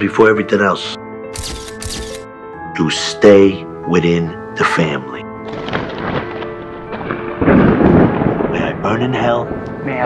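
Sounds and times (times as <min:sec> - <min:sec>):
background music with held tone: 0:00.0 - 0:10.0
thunder crash: 0:05.5 - 0:10.0.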